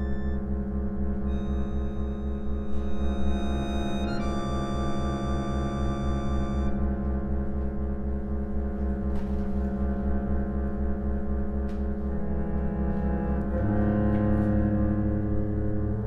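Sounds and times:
reed organ chord: 0:00.0 - 0:09.0, 0:09.6 - 0:16.0
pulsing low drone bass: 0:00.0 - 0:16.0.

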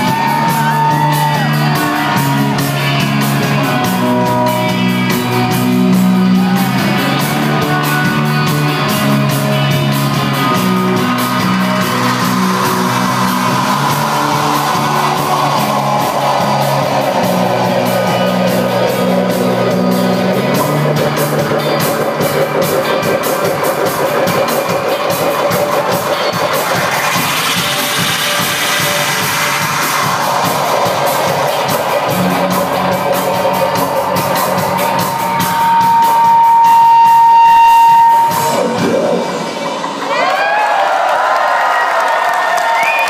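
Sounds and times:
clicking drum rhythm: 0:00.0 - 0:40.1
live rock band playing: 0:00.0 - 0:40.2
crowd cheering and whistling: 0:00.0 - 0:43.0.

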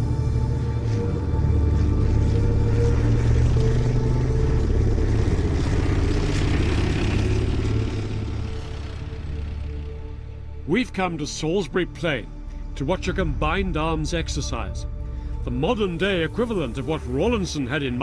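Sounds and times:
background music: 0:00.0 - 0:18.0
tank engine rumbling: 0:00.0 - 0:18.0.

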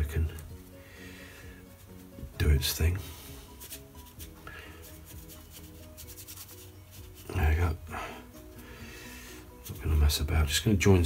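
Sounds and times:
quiet background music: 0:00.0 - 0:11.0
brush strokes on paper: 0:00.4 - 0:10.3.

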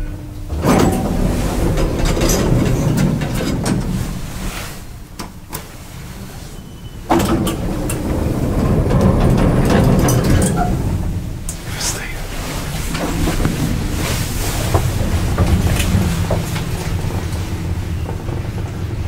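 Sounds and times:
elevator car ride noise: 0:00.0 - 0:19.0
elevator clicks: 0:00.4 - 0:04.4, 0:06.6 - 0:11.6.

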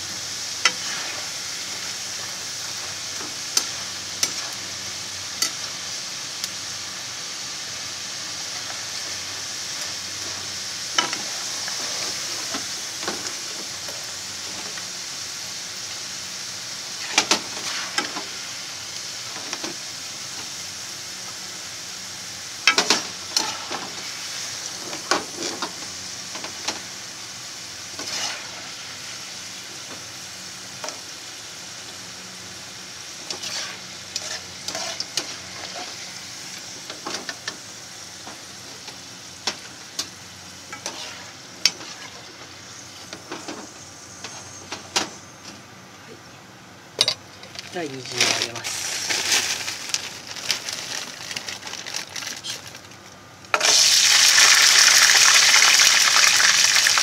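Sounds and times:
fries sizzling in hot oil: 0:00.0 - 0:46.2, 0:47.0 - 0:57.0.

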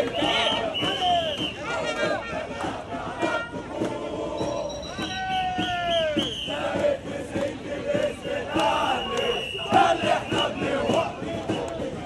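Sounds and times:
crowd chanting and shouting: 0:00.0 - 0:12.0.

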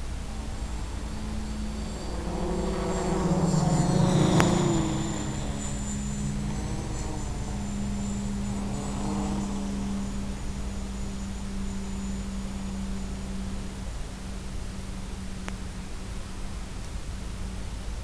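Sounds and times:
model aircraft motor humming: 0:00.0 - 0:18.0.

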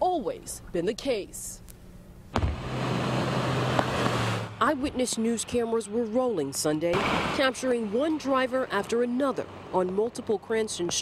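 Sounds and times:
low engine hum: 0:02.3 - 0:07.3.

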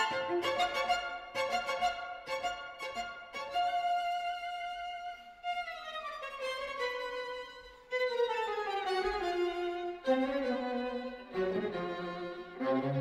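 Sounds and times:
string quartet playing: 0:00.0 - 0:13.0.

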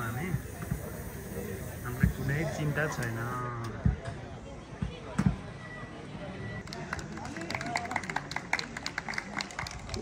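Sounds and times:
faint talk of people: 0:00.0 - 0:10.0.

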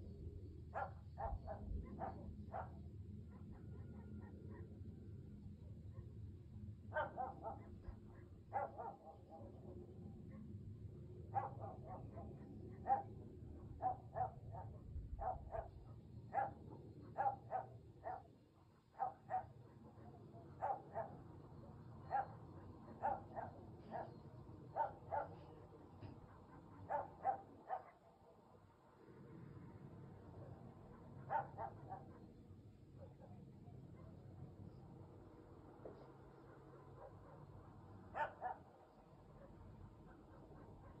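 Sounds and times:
dog barking: 0:00.7 - 0:04.9, 0:06.9 - 0:09.6, 0:11.3 - 0:21.3, 0:22.0 - 0:28.5, 0:30.4 - 0:34.2, 0:35.9 - 0:41.0.

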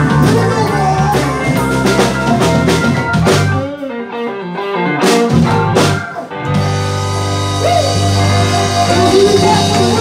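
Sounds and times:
blues-rock band playing: 0:00.0 - 0:10.0
electric guitar single notes: 0:03.5 - 0:10.0.

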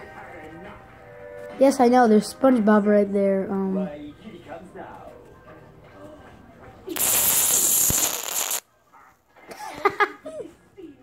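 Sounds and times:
aerosol can spraying hiss: 0:07.0 - 0:08.6.

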